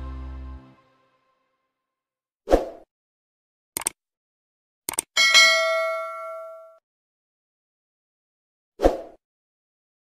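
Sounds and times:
mouse double click: 3.8s - 4.0s, 4.9s - 5.1s
notification bell ding: 5.2s - 6.8s.

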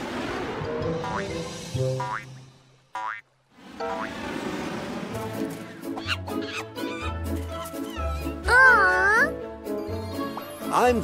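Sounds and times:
cartoon background music: 0.5s - 3.2s, 3.8s - 4.2s, 5.0s - 11.0s
springy boing sound effects: 2.0s - 2.3s.

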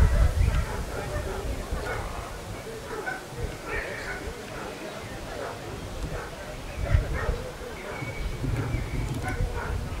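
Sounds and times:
dog barking: 0.0s - 10.0s
people's voices: 0.0s - 10.0s.

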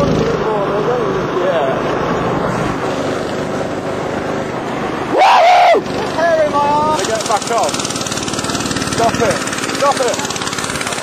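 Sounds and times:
go-kart engine running: 0.0s - 11.0s
road and wind noise: 0.0s - 11.0s
high-pitched yell: 5.1s - 5.9s.

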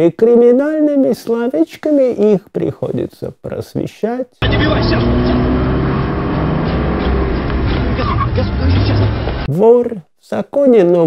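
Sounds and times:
car engine running: 4.4s - 9.5s.

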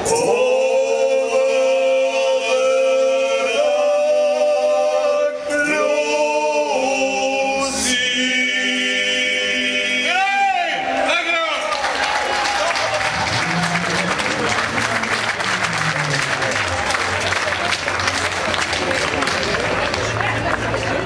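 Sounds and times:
choir singing held chords: 0.0s - 11.1s.

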